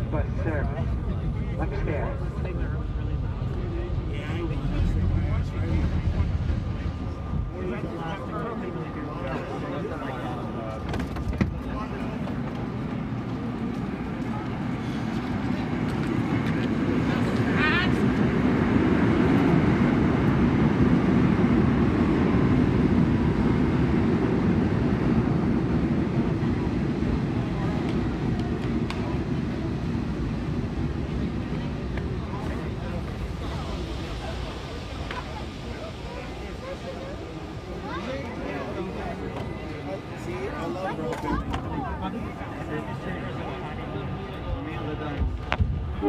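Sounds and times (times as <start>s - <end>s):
subway train braking to a stop: 32.2s - 40.3s.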